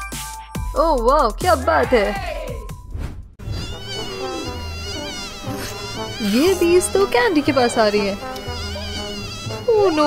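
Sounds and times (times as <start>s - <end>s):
bees buzzing: 3.4s - 10.0s.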